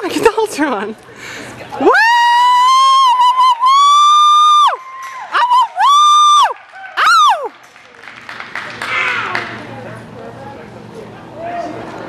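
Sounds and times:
spectators whooping and screaming: 1.8s - 7.6s.

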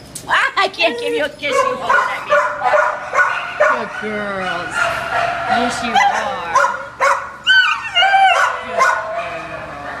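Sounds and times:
dog whining: 0.9s - 10.0s.

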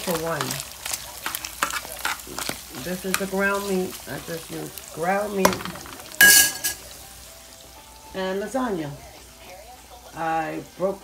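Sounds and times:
spatula scraping a pan: 0.0s - 4.4s
meat sizzling in a pan: 0.0s - 11.0s.

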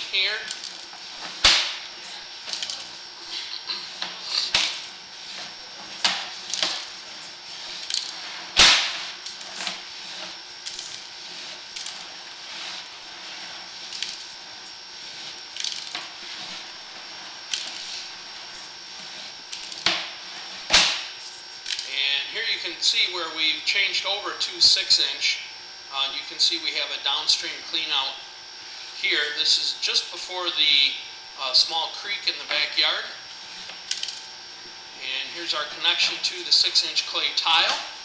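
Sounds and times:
sharp knocks and cracks: 1.4s - 1.8s, 8.6s - 9.0s, 20.7s - 21.1s.

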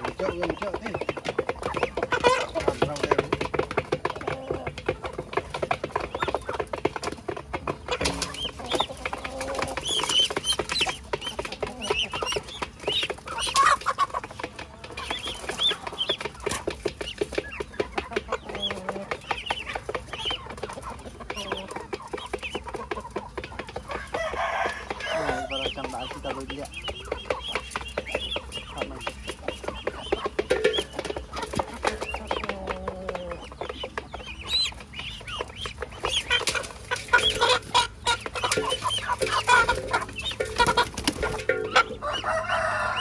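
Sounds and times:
beaks tapping on metal: 0.0s - 42.0s
chickens clucking: 0.0s - 43.0s
ducklings peeping: 0.0s - 43.0s.

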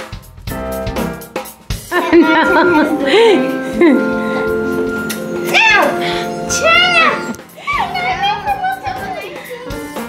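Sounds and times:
background music: 0.5s - 10.0s.

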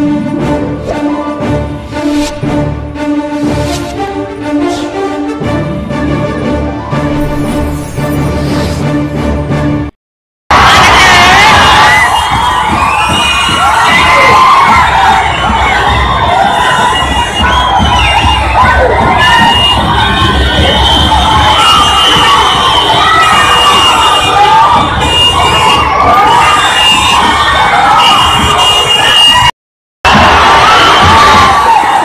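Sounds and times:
large crowd cheering and shouting: 5.8s - 7.9s, 10.5s - 29.5s, 30.1s - 32.0s.

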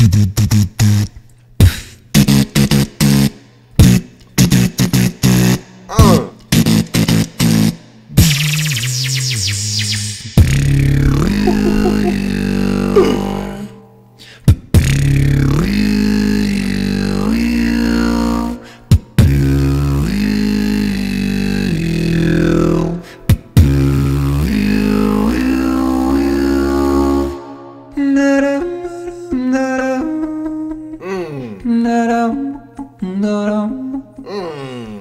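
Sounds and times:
beatboxing vocal bass: 5.9s - 8.4s, 10.4s - 12.4s, 13.0s - 13.7s, 29.0s - 35.0s.

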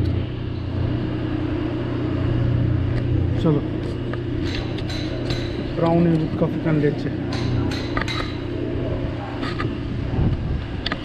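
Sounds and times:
motor humming: 0.0s - 11.0s.

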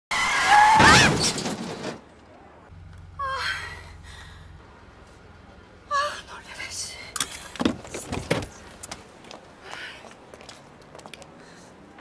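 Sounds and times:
tyres screeching: 0.1s - 2.4s
car crash: 0.3s - 2.4s.

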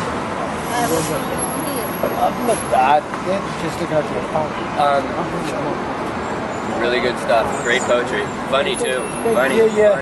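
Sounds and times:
road traffic noise: 0.0s - 10.0s
people talking and laughing: 0.7s - 10.0s.

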